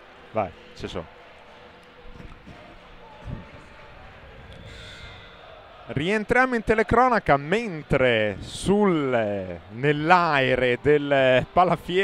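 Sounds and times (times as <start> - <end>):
faint music over loudspeakers: 0.0 - 12.0
murmur of voices: 0.0 - 12.0.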